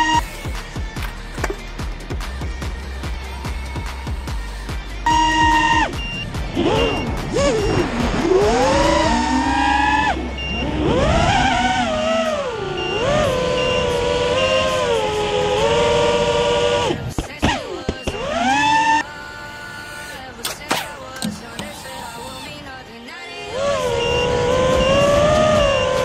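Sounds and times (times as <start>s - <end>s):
background music with beat: 0.0s - 11.1s, 20.4s - 23.3s
quadcopter motors whining: 5.1s - 26.0s.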